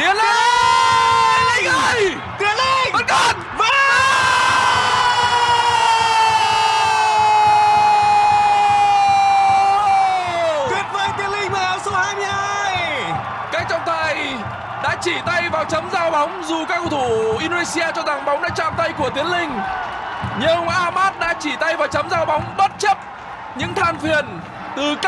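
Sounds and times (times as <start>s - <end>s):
commentator yelling: 0.0s - 19.6s.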